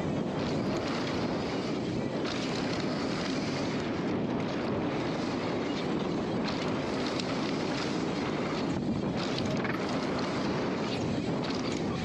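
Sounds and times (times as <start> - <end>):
bike clicks and rattles: 0.0 - 12.0
bike tyres rolling on dirt: 0.0 - 12.0
wind buffeting microphone: 0.0 - 12.0.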